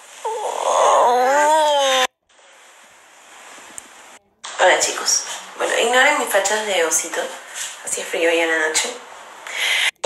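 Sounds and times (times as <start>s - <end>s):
faint room hiss: 0.0s - 10.0s
toddler whimpering cry: 0.2s - 2.1s.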